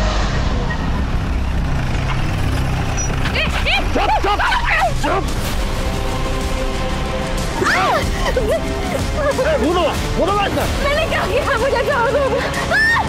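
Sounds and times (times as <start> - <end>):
car engine approaching: 0.0 - 12.6
droning background score: 0.0 - 13.0.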